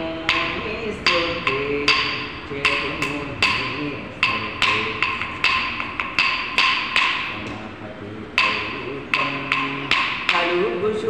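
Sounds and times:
sharp ringing beat strikes: 0.0s - 10.8s.

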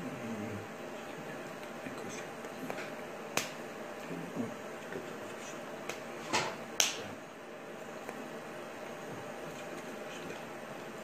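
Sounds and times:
steady room hiss: 0.0s - 11.0s
hands slapping together: 2.6s - 3.6s, 5.8s - 7.1s.

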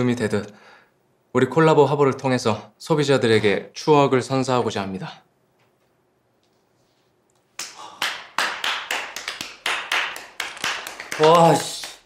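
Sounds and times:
people clapping: 7.5s - 12.0s.

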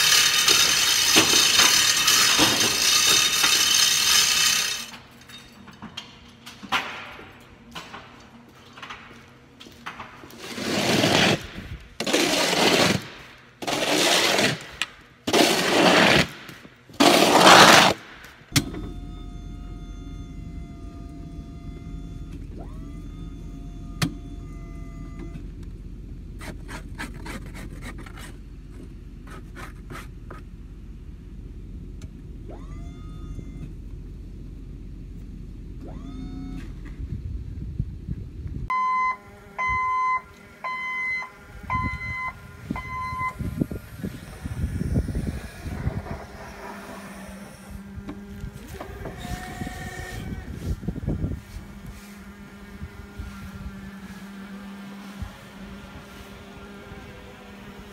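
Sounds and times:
forklift reversing beeper: 18.5s - 25.7s, 38.7s - 45.7s
low engine hum: 18.5s - 57.9s
loud gusts of noise: 41.5s - 57.9s.

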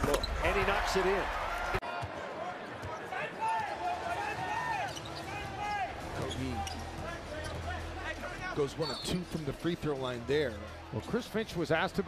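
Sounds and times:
sneakers squeaking on hardwood: 4.4s - 5.6s.

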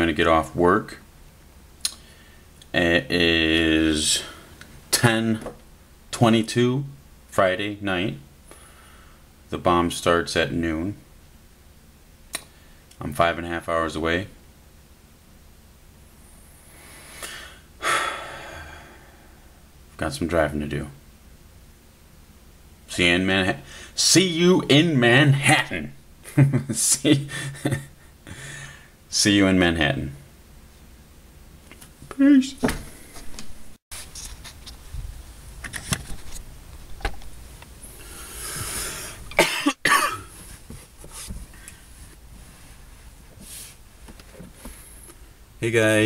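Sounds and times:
man drawing breath: 16.6s - 19.5s, 28.3s - 29.0s, 37.9s - 39.3s
man sighing heavily: 17.1s - 19.5s
man coughing: 39.3s - 40.4s.

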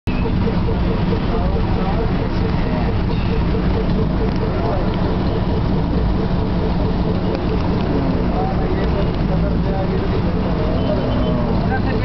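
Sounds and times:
car engine and road rumble: 0.0s - 12.0s
faint pulsing tone: 0.1s - 12.0s.

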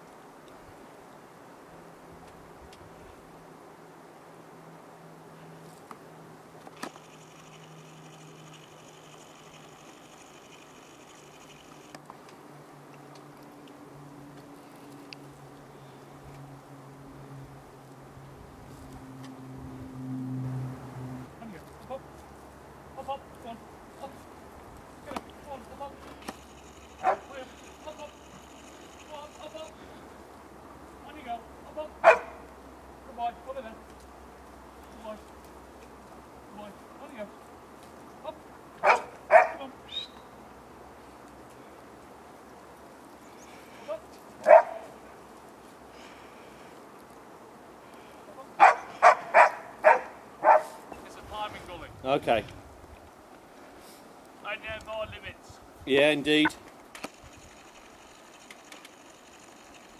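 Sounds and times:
distant dog barking: 27.0s - 27.6s, 32.0s - 32.5s, 38.8s - 39.7s, 44.4s - 45.0s, 48.6s - 50.8s.

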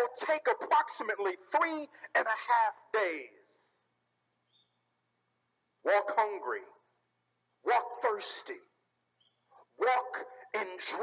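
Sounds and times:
man speaking through microphone: 0.0s - 3.5s, 5.8s - 6.8s, 7.6s - 8.7s, 9.8s - 11.0s.

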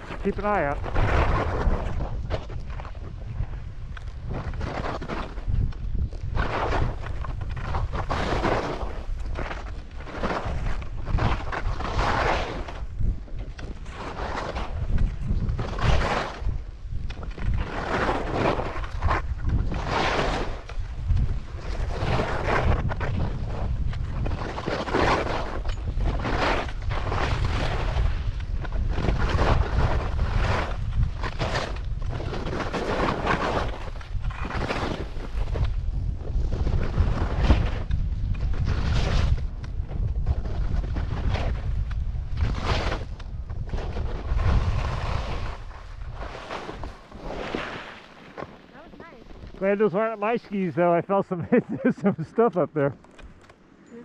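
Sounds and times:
wind on microphone: 0.0s - 52.2s
skis swishing on snow: 6.2s - 52.9s.

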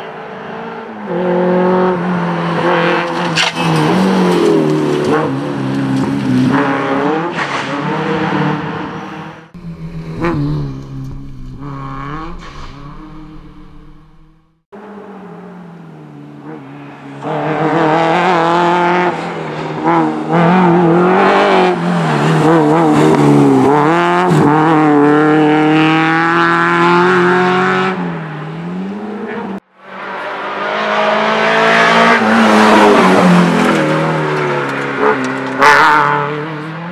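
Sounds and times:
rally car engine revving: 0.0s - 36.9s.

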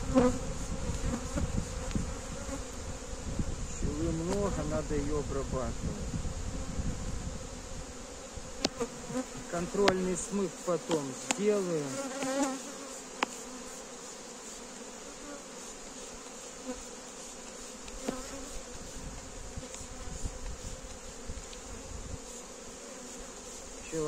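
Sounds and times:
honeybees buzzing: 0.0s - 24.0s.

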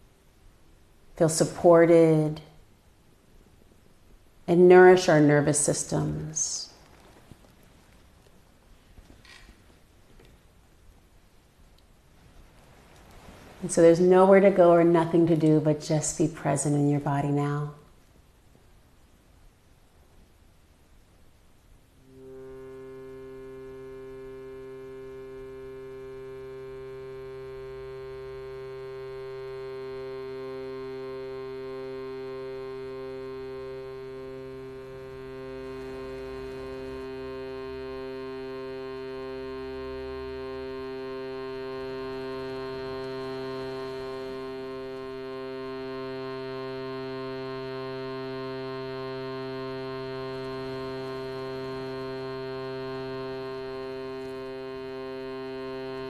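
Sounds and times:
shruti box reed drone: 1.1s - 2.5s, 13.6s - 17.5s, 22.0s - 56.0s.

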